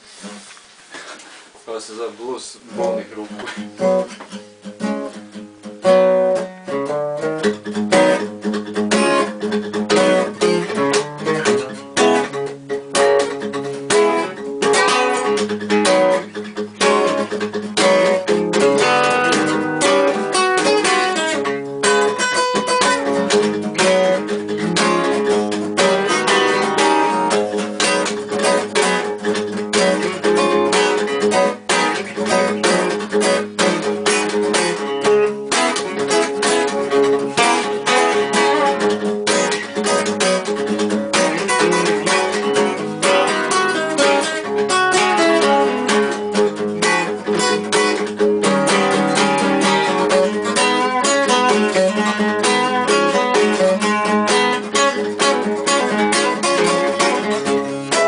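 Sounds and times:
acoustic guitars blues jam: 0.0s - 58.0s.

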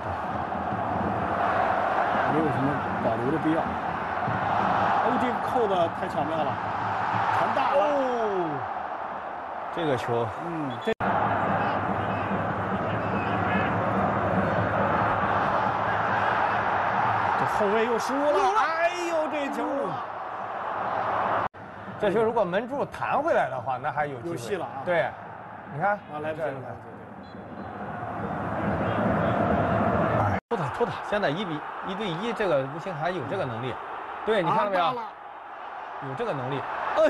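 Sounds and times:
stadium hubbub: 0.0s - 37.0s.

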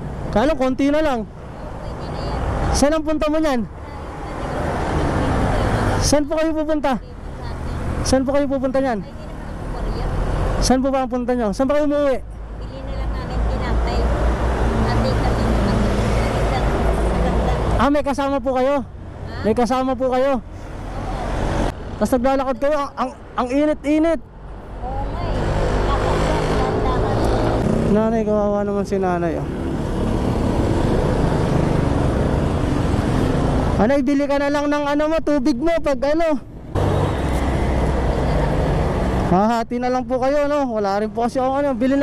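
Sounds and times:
street traffic rumble: 0.0s - 42.0s.

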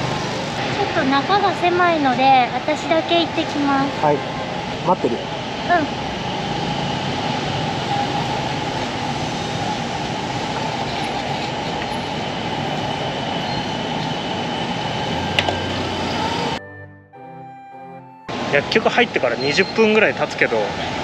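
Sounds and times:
low traffic roar: 0.0s - 16.6s, 18.3s - 21.0s.

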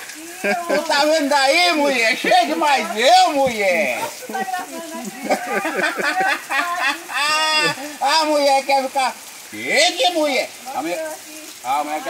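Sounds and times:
heavy rain hissing: 0.0s - 12.0s
man laughing: 0.3s - 1.2s, 2.0s - 3.0s, 3.8s - 8.1s
man talking loudly: 0.5s - 4.4s, 7.2s - 11.0s
loud drawn-out call: 5.4s - 8.0s.

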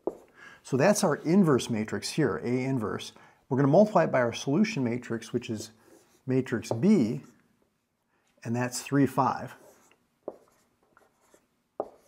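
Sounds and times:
marker tap: 0.0s - 0.3s, 9.8s - 12.0s
marker writing on whiteboard: 0.0s - 0.3s, 5.6s - 7.4s, 9.4s - 12.0s.

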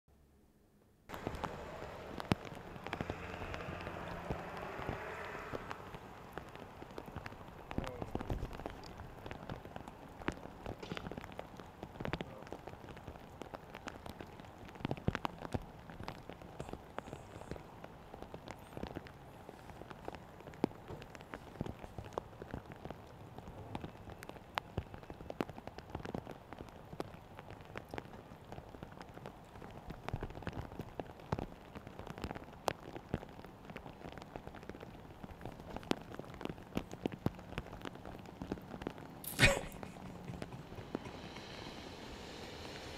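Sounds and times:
low fire hiss: 0.2s - 42.9s
burning paper crackling: 1.1s - 25.9s
fire popping: 1.1s - 42.9s.

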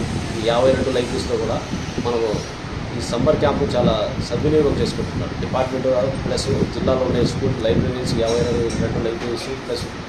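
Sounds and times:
steady background hiss: 0.0s - 10.0s
man talking: 0.3s - 10.0s.

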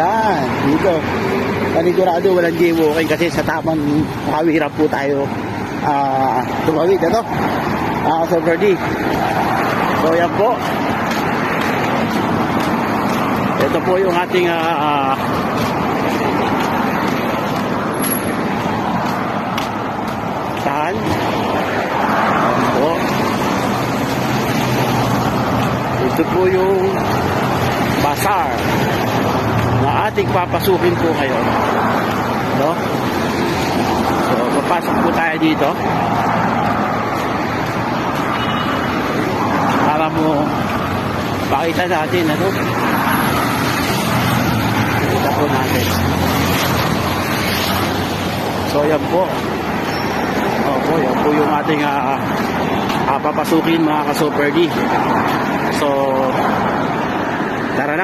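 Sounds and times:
city traffic: 0.0s - 58.0s.

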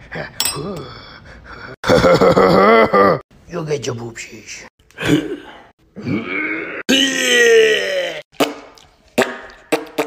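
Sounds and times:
person groaning: 5.0s - 8.2s.

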